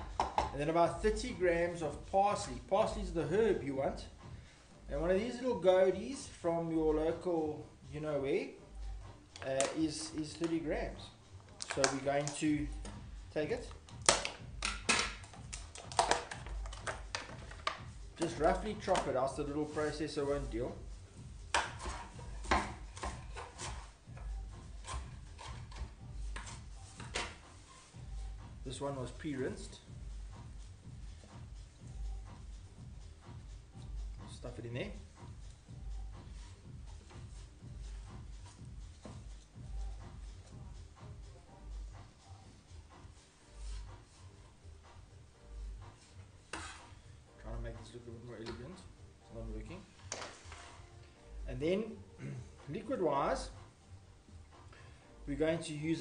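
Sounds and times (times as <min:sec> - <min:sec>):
knife chopping on wooden board: 0:21.5 - 0:27.4.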